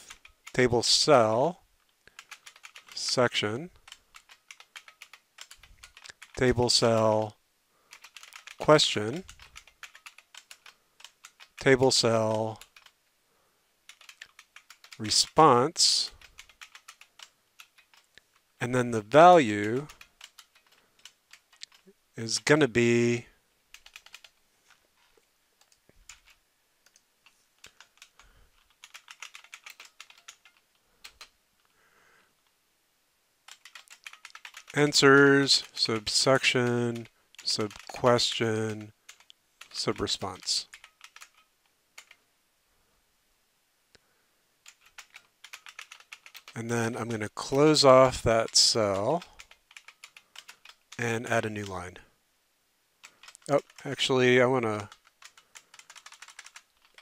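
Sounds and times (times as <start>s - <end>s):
computer keyboard typing: 0.0s - 1.4s, 2.1s - 7.3s, 7.9s - 13.0s, 13.9s - 18.2s, 19.0s - 22.0s, 23.7s - 24.4s, 25.6s - 31.4s, 33.5s - 42.2s, 44.6s - 51.8s, 53.0s - 57.0s.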